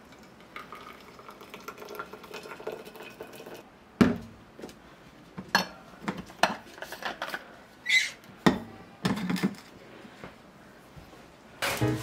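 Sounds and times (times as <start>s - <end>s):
water pouring into a flask: 0.6s - 3.6s.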